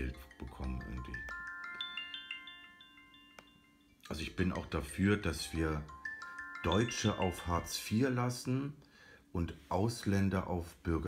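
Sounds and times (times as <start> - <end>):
phone ringtone chimes: 0.0 - 8.2.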